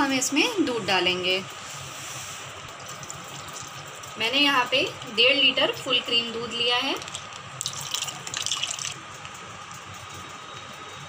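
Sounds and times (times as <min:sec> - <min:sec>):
milk pouring into pan: 0:07.0 - 0:09.4.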